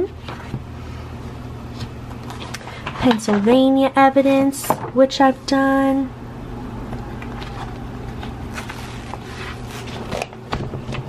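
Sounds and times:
steady low hum: 0.0 - 11.0
binder pages rustling: 7.2 - 11.0.

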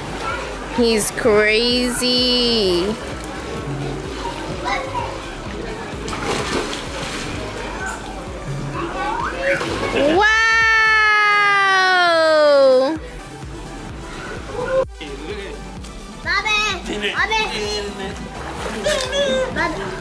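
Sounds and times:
children playing: 0.0 - 0.8, 1.8 - 11.6, 16.3 - 20.0
water splashing in pool: 0.0 - 13.0, 17.9 - 20.0
background music: 0.0 - 20.0.

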